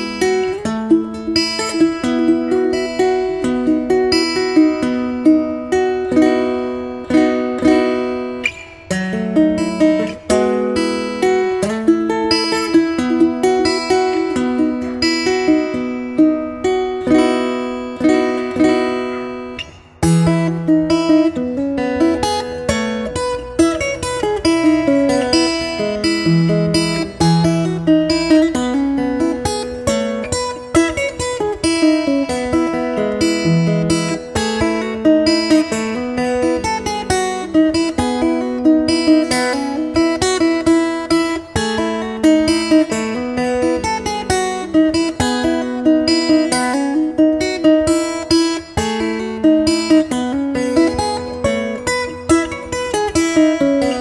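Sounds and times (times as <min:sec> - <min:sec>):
ukulele plucked fingerstyle: 0:00.0 - 0:54.0.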